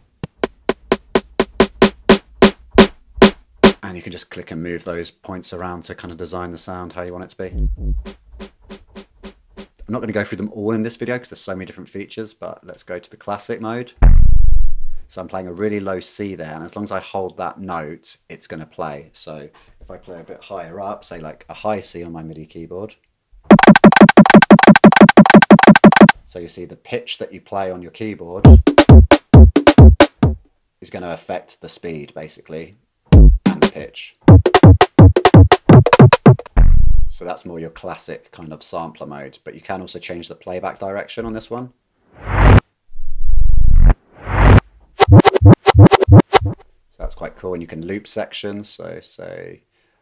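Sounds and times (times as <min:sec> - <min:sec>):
sampled kick drum hits: 0:07.6 - 0:09.6, 0:23.5 - 0:26.1, 0:28.5 - 0:30.4, 0:33.2 - 0:33.5, 0:34.3 - 0:36.9, 0:45.0 - 0:46.6.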